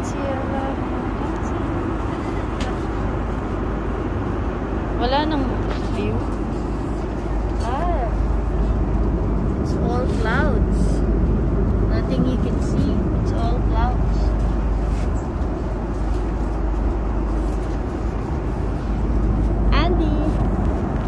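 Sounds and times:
airliner cabin engine rush: 0.0s - 21.0s.

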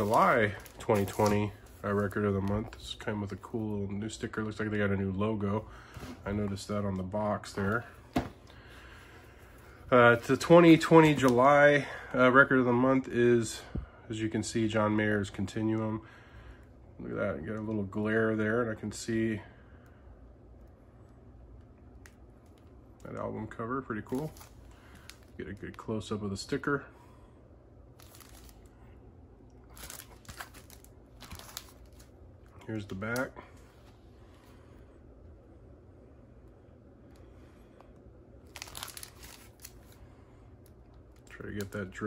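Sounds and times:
plastic shrink-wrap crinkling: 0.0s - 3.0s, 23.9s - 25.9s, 28.0s - 28.7s, 29.6s - 33.2s, 38.4s - 40.0s, 40.6s - 42.0s
room hum: 0.0s - 42.0s.

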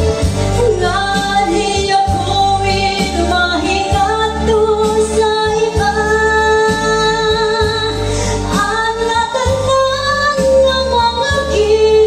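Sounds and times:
backing music: 0.0s - 12.0s
woman singing into a microphone: 0.0s - 12.0s.

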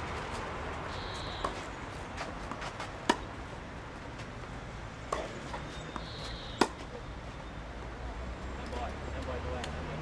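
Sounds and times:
tennis ball hit by racket: 1.4s - 3.4s, 5.1s - 7.0s.

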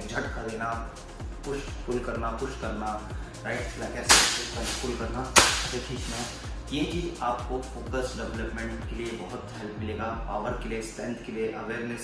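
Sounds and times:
plastic bag snapping taut: 4.1s - 6.0s.

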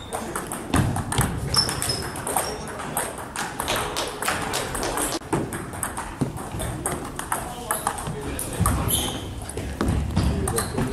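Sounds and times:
table tennis balls clicking: 0.0s - 8.9s.

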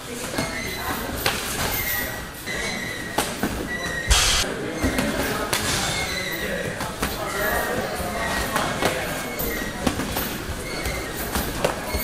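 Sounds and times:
high-pitched whine: 4.1s - 4.5s
sharp strikes landing: 4.1s - 4.5s.

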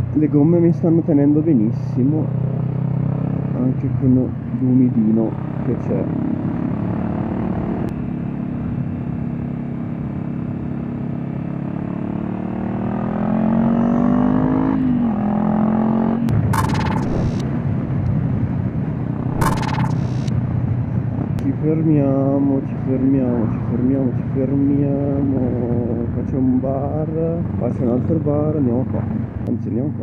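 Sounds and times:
motorcycle engine accelerating: 2.0s - 4.6s, 5.2s - 21.4s
rushing noise bursts: 16.6s - 17.4s, 19.2s - 20.3s.

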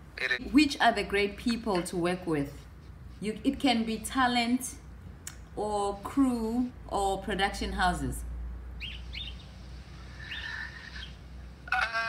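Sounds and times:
birds chirping faintly: 8.8s - 11.5s.

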